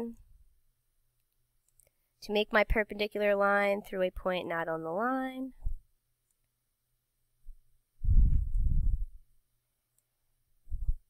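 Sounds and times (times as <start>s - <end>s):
woman speaking: 2.2s - 5.6s.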